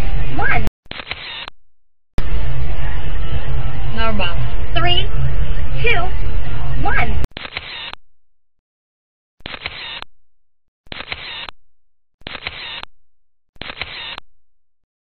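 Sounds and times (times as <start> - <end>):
camera shutter click: 12.2 - 12.8, 13.6 - 14.2.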